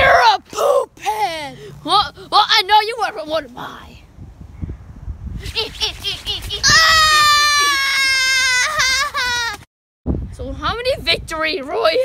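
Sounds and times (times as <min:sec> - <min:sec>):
boy wailing and sobbing: 0:06.0 - 0:09.6.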